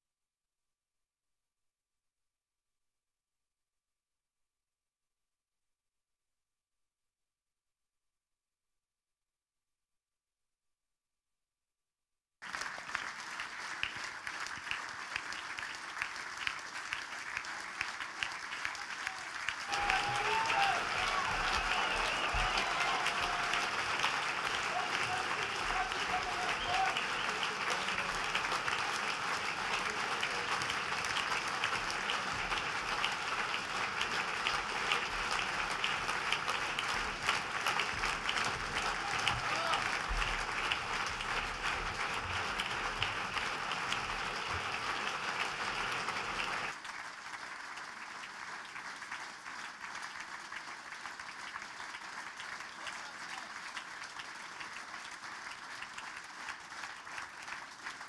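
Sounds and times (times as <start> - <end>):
crowd applauding: 12.4 - 58.0.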